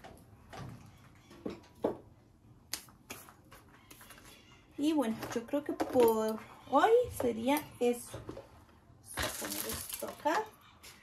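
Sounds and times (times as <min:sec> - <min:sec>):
small objects clicking and knocking: 0:09.1 - 0:10.4.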